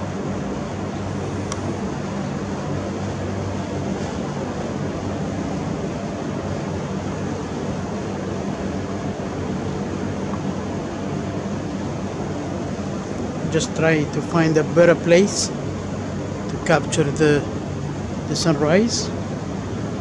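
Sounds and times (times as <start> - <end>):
rushing mechanical hum: 0.0 - 20.0.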